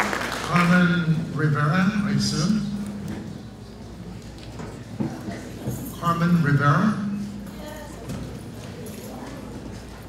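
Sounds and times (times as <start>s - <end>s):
faint murmured voices: 2.3s - 10.0s.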